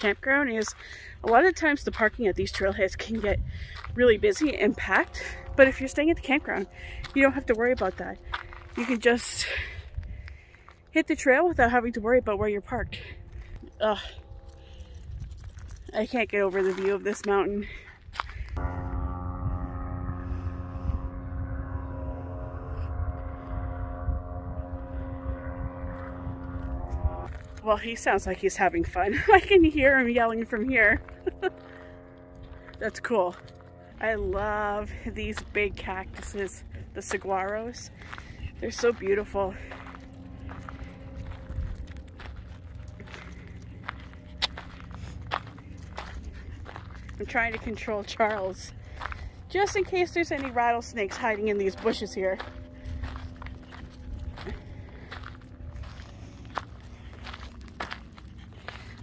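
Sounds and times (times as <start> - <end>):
footsteps on dirt trail: 0.0 - 11.9, 12.9 - 19.4, 23.8 - 59.0
paramotor engine drone: 0.0 - 59.0
wind rumble on microphone: 0.0 - 59.0.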